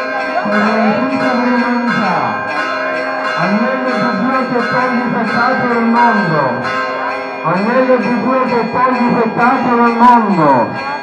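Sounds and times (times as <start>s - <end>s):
faint voice: 0.0s - 1.7s
church bells pealing: 0.0s - 11.0s.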